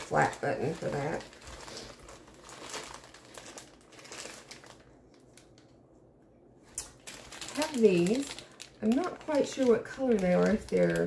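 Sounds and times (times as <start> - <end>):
plastic bags crinkling: 0.0 - 5.8, 6.6 - 11.0.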